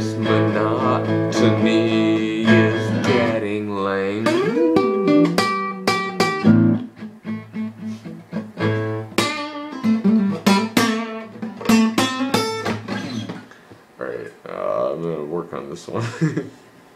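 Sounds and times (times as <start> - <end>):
acoustic guitar strumming: 0.0 - 13.5.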